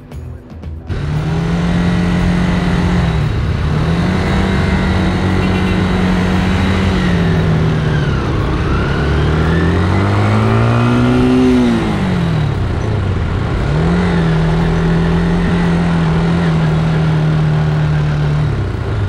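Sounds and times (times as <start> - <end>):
road noise: 0.0 - 19.0
motorcycle engine revving: 0.9 - 19.0.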